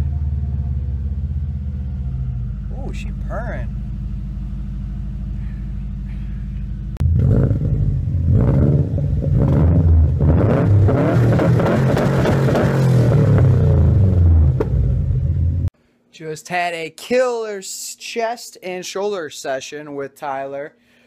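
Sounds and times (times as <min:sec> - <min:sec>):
loud uneven exhaust rumble: 0:00.0 - 0:11.0, 0:13.0 - 0:15.7
car engine idling: 0:00.0 - 0:15.7.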